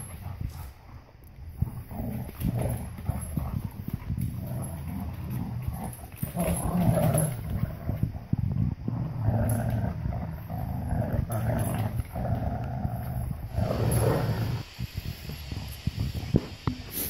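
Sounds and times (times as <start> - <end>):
dogs play-growling: 0.0 - 17.0.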